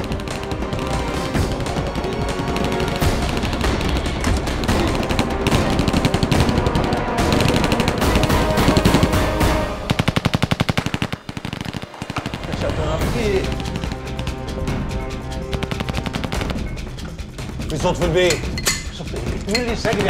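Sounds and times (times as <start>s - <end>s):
submachine gun automatic fire: 0.0s - 14.2s, 15.5s - 16.6s
background music: 0.0s - 20.0s.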